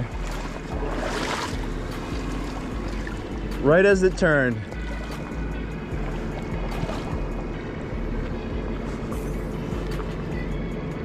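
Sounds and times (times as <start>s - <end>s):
water lapping on rocks: 0.0s - 10.1s.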